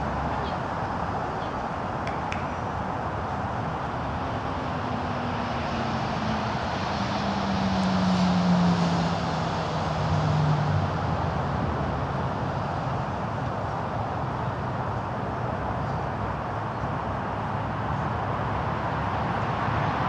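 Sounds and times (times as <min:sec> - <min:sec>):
background traffic noise: 0:00.0 - 0:20.0
vehicle passing by: 0:02.7 - 0:14.8, 0:17.2 - 0:20.0.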